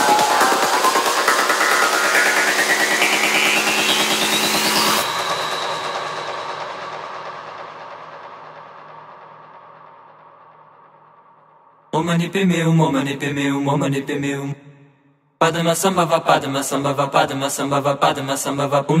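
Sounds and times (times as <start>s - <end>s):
electronic trance music: 0.0s - 10.2s.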